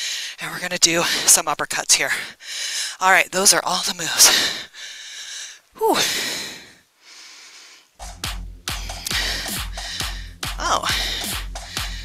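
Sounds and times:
quiet breath in: 2.2 - 3.0, 4.3 - 8.0, 8.7 - 10.4, 11.0 - 12.0
person breathing out hard: 4.3 - 8.0, 8.7 - 12.0.

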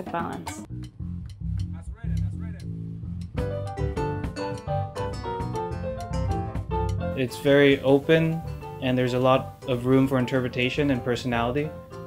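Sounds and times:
electric bass guitar: 0.0 - 9.6.

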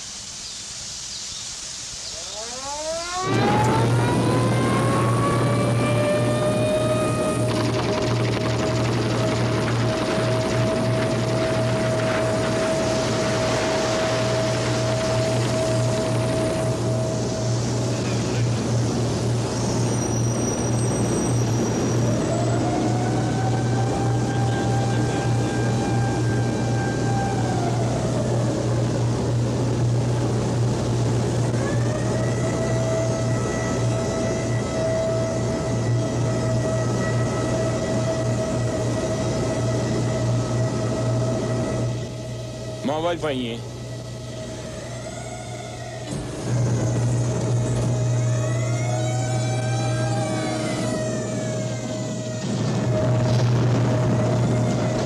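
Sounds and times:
machinery whine: 0.0 - 55.0
heavy low machinery hum: 2.2 - 55.0.

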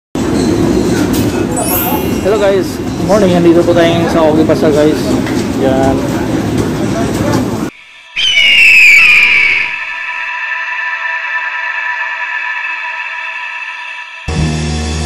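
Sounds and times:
eagle screech: 7.7 - 14.3
steady synth chord: 9.8 - 15.0.

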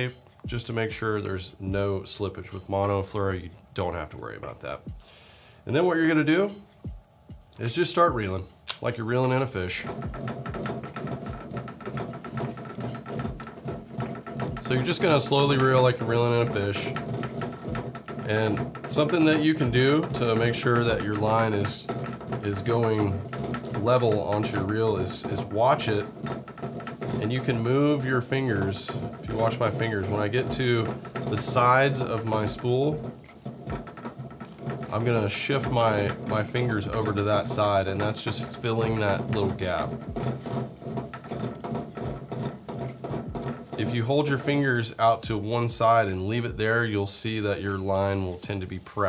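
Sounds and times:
fishing reel cranking: 9.4 - 45.0.

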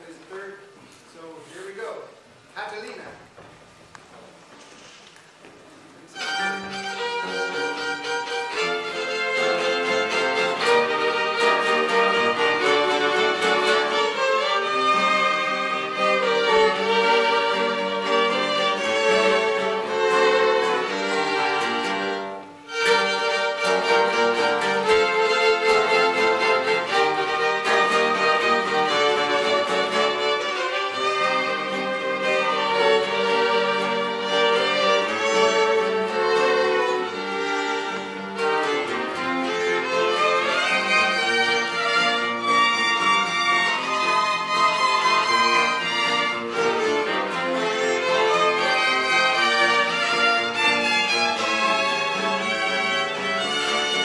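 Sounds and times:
acoustic guitars accompanying: 4.2 - 54.0
violins playing in harmony: 6.0 - 54.0.

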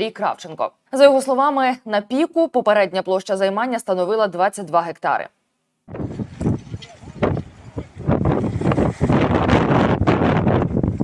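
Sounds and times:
wind buffeting microphone: 5.9 - 11.0.

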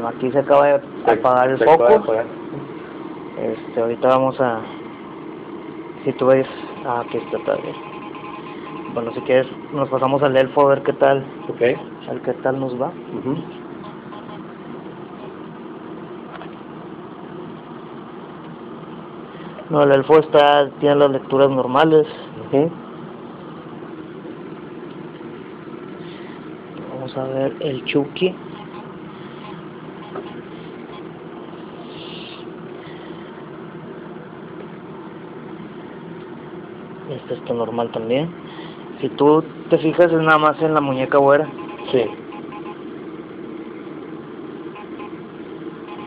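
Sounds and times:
steady low hum: 0.0 - 46.0
faint hiss: 31.7 - 33.2
hiss: 31.8 - 32.5.

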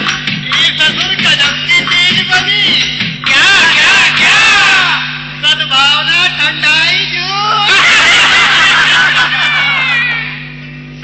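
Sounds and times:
crowd laughing and shouting: 3.3 - 5.1, 7.4 - 10.5.

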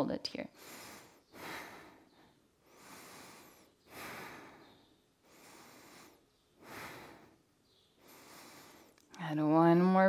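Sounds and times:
woman breathing slowly: 0.5 - 9.2.

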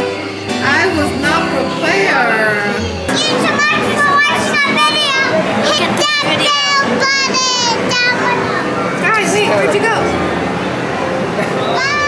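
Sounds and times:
young children shouting and squealing: 2.7 - 9.1, 11.6 - 12.0.

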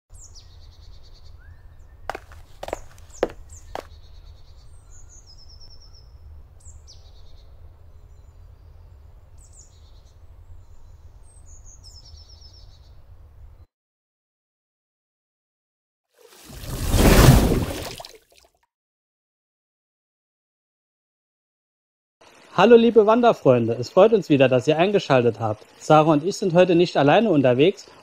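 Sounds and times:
songbirds singing: 0.1 - 13.7.

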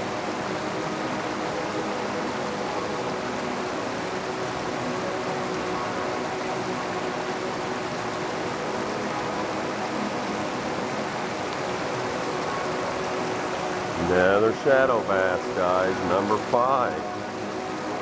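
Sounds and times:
creek water rushing over concrete: 0.0 - 18.0.

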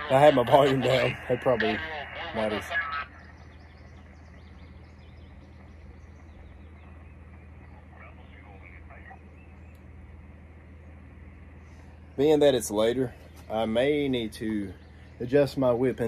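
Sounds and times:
faint voice over radio: 0.0 - 3.4, 7.7 - 9.3
radio receiver hiss and hum: 0.0 - 16.0.

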